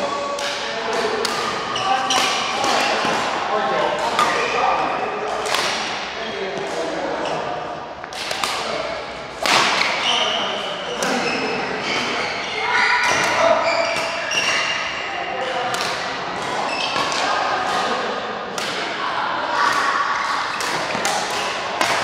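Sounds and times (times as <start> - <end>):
rackets striking shuttlecock: 0.3 - 3.4, 5.3 - 6.8, 8.0 - 10.3, 13.0 - 14.8, 15.6 - 19.0, 19.6 - 22.0.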